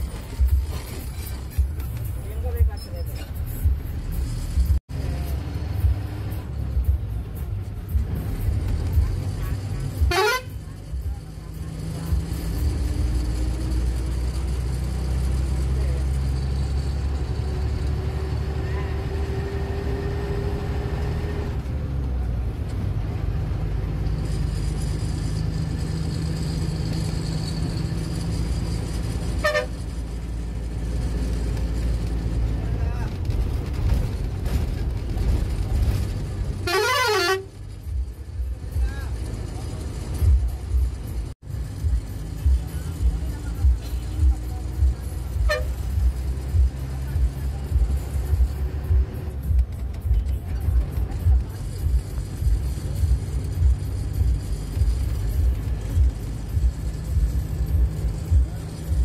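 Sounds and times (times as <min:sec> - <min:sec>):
bus engine running: 0:00.0 - 0:59.0
bus horn: 0:08.8 - 0:10.9, 0:29.2 - 0:30.0, 0:36.5 - 0:37.9, 0:45.1 - 0:46.4.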